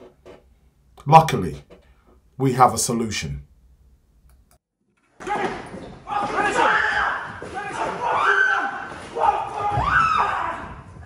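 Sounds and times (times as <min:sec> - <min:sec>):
person screaming: 0:06.1 - 0:10.8.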